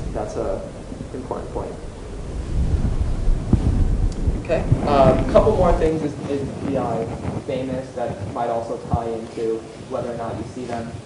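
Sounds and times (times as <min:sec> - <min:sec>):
microphone handling rumble: 0:00.0 - 0:11.0.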